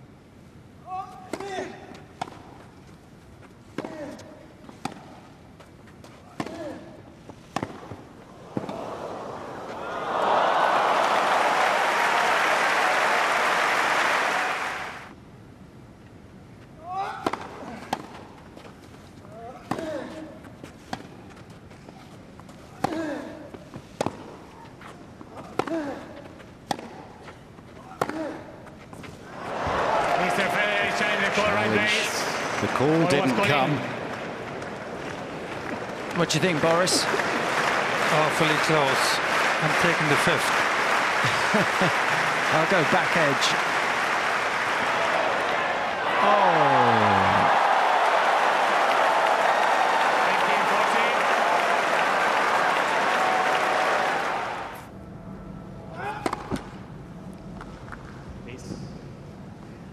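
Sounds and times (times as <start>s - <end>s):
racket striking tennis ball: 3.7s - 5.2s, 7.5s - 8.8s, 25.4s - 27.2s, 27.9s - 28.5s
crowd applause: 8.4s - 15.1s, 29.3s - 54.8s
player grunting: 46.2s - 47.5s.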